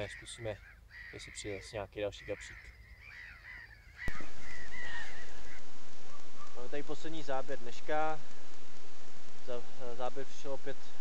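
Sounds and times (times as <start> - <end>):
birds calling: 0.0 - 7.0.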